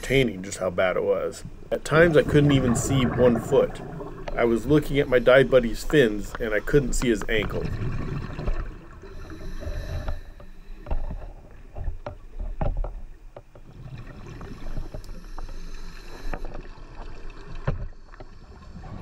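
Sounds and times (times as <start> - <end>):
low underwater rumble: 1.3 - 9.2.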